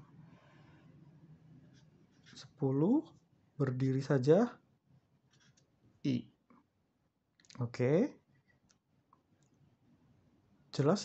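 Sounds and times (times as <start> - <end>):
person speaking: 2.3 - 4.6, 7.5 - 8.2.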